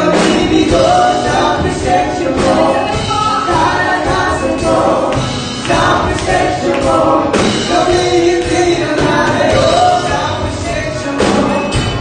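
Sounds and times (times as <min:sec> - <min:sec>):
live worship band playing: 0:00.0 - 0:12.0
people singing: 0:00.0 - 0:12.0.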